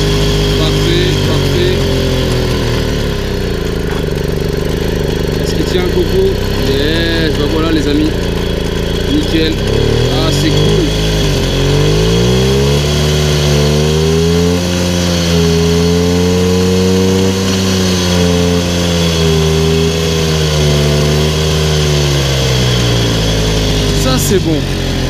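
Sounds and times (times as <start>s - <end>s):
moped engine running: 0.0s - 25.0s.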